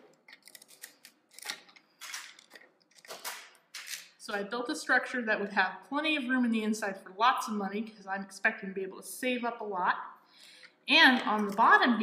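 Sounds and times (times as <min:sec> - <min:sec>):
plastic bricks clicking and snapping: 0:00.0 - 0:04.1.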